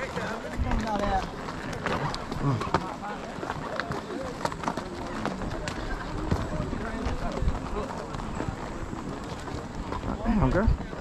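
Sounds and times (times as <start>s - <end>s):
hoof strikes on dirt: 0.0s - 11.0s
horse tack clicking: 0.0s - 11.0s.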